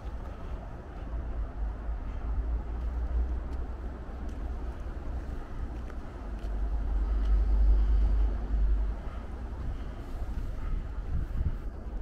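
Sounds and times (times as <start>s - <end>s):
city road traffic rumble: 0.0s - 12.0s.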